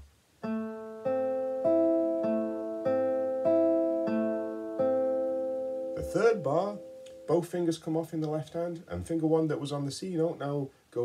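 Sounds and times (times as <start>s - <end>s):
fingerpicked classical guitar arpeggio: 0.4s - 7.4s.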